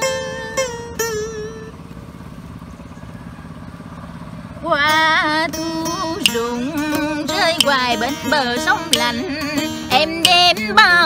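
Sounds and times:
small engine puttering: 0.0 - 11.0.

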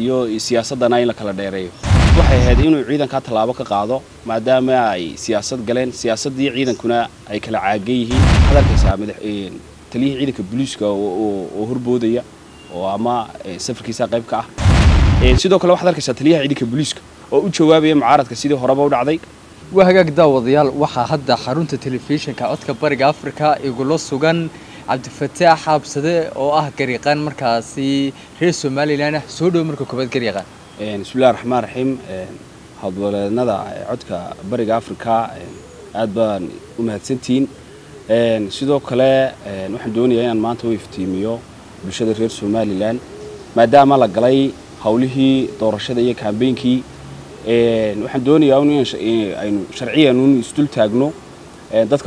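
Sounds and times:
man speaking: 0.0 - 12.2, 15.1 - 19.2, 47.5 - 51.1
loud rumbling microphone noise: 1.8 - 2.7, 8.1 - 9.0, 14.6 - 15.4.

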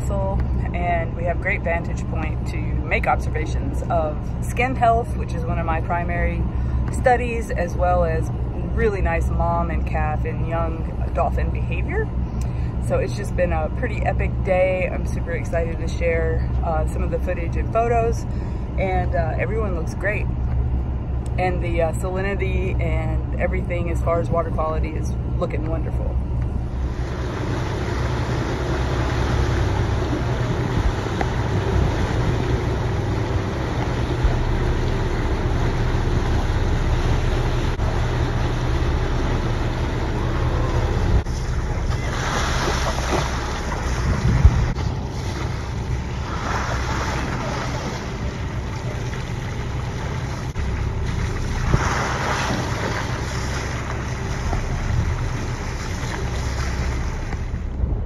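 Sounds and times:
boat engine idling: 0.0 - 58.0
wind: 0.0 - 58.0
water splashing: 26.8 - 57.7.

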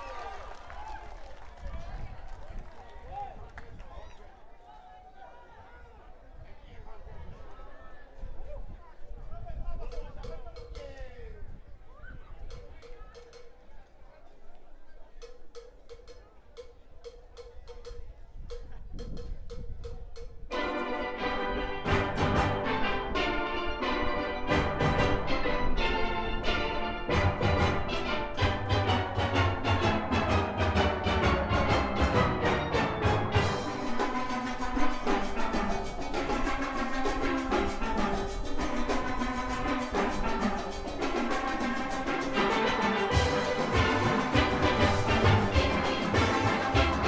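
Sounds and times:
crowd chatter: 0.0 - 47.0
sharp percussion ticks: 15.2 - 20.4
steel orchestra playing: 20.5 - 47.0.

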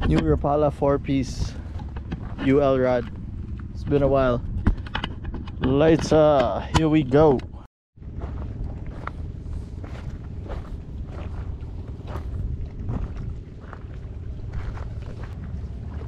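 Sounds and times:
wind on microphone: 8.2 - 16.0.

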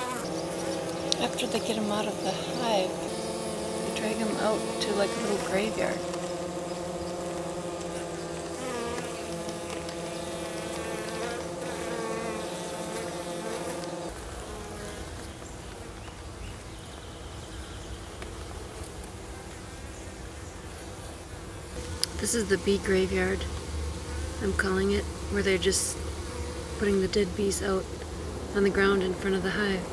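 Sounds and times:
honey bees buzzing: 0.0 - 29.9.

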